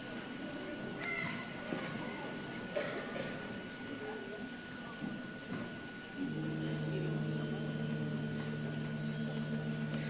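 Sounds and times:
faint steady high tone: 0:06.2 - 0:10.0
short high wavering sound: 0:06.2 - 0:10.0.

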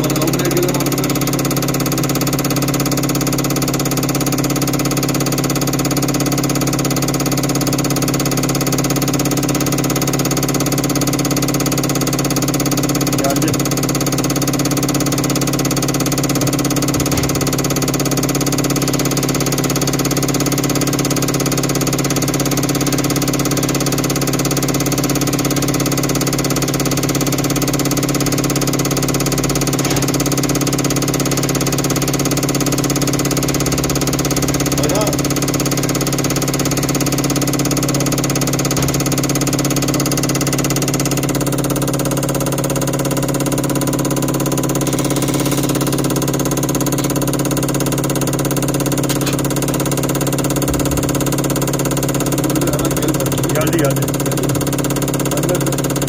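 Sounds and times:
test bench motor and pump humming: 0:00.0 - 0:56.0.

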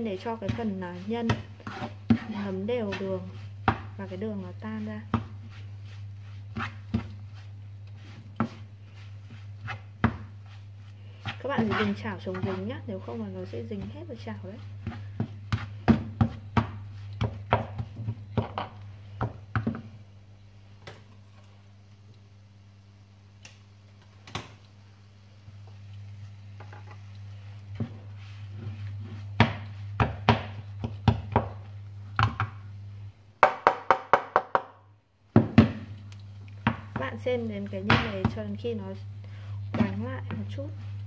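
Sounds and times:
steady low hum: 0:00.0 - 0:33.4, 0:34.8 - 0:41.0
spatula scraping frying pan: 0:00.2 - 0:18.7.

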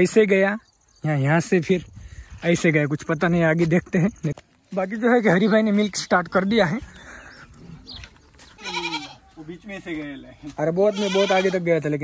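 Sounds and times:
goat bleating: 0:08.4 - 0:09.4, 0:10.7 - 0:11.9.

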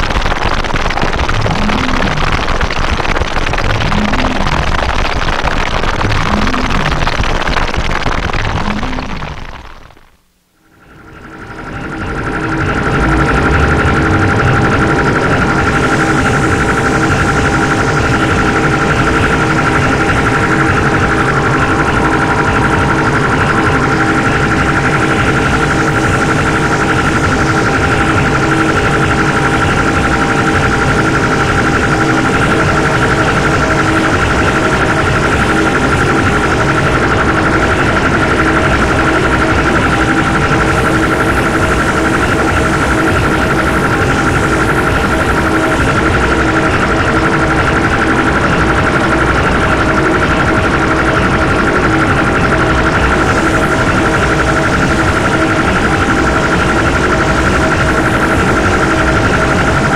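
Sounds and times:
distorted electronic noise music: 0:00.0 - 0:10.2, 0:10.8 - 0:59.9.

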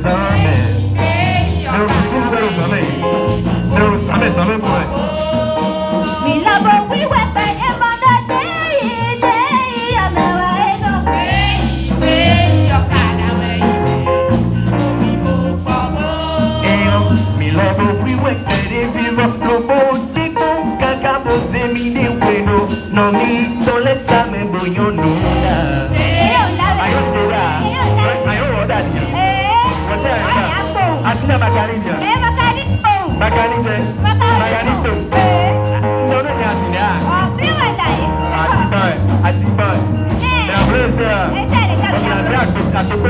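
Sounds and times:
church choir singing: 0:00.0 - 0:03.6, 0:11.2 - 0:14.2, 0:25.0 - 0:27.3
low bass line: 0:00.0 - 0:07.8, 0:10.0 - 0:43.0
percussion steady beat: 0:00.0 - 0:43.0.

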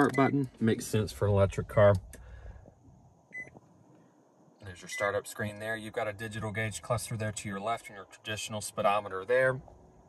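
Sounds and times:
faint cabin background: 0:00.0 - 0:10.0
short electronic dashboard beep: 0:03.3 - 0:03.5.

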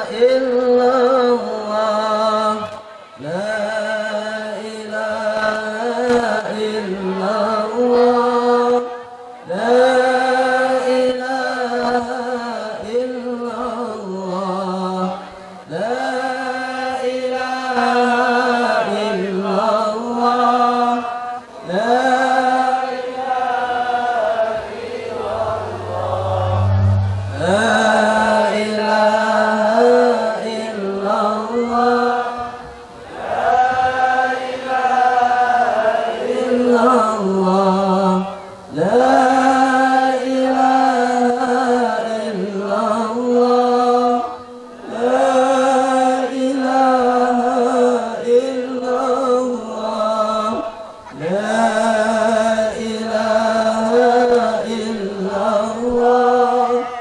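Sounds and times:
chanted sung phrase: 0:21.2 - 0:30.1.

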